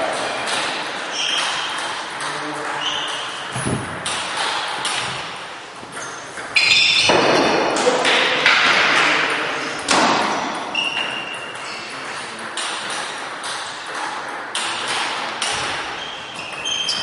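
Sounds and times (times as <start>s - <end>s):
voices in a hall: 0.0s - 17.0s.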